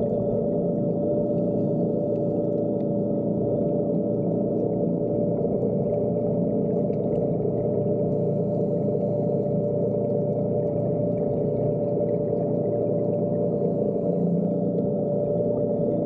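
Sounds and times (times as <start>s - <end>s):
underwater motor hum: 0.0s - 16.0s.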